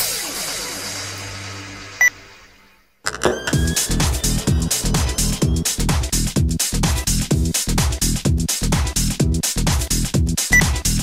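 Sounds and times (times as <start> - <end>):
electronic dance music: 3.1 - 8.0.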